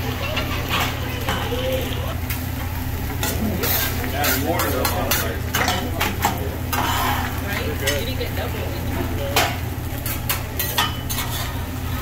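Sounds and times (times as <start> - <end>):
food sizzling: 0.0 - 12.0
metal spatula scraping griddle: 3.2 - 5.7, 6.7 - 7.4, 10.0 - 12.0.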